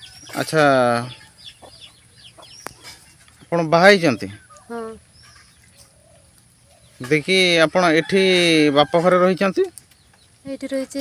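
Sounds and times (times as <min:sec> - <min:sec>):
faint chickens cheeping: 0:00.0 - 0:10.4.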